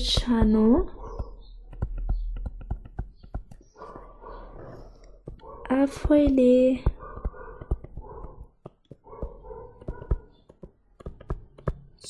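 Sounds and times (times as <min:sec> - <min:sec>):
stylus tapping on tablet screen: 0:00.0 - 0:12.0.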